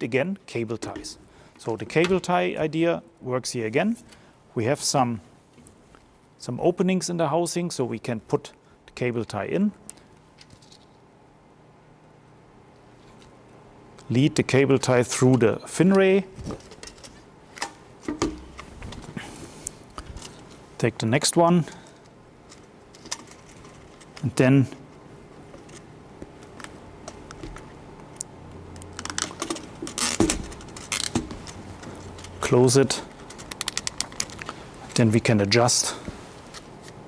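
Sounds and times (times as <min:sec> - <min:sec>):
cable tie ratchet clicks: 0:33.2 - 0:34.5.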